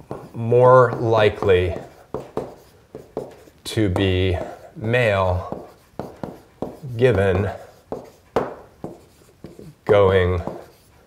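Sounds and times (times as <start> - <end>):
stylus tapping on tablet screen: 0.0 - 4.6, 5.5 - 10.7
man speaking: 0.3 - 2.0, 3.6 - 5.8, 6.7 - 7.7, 9.6 - 10.7.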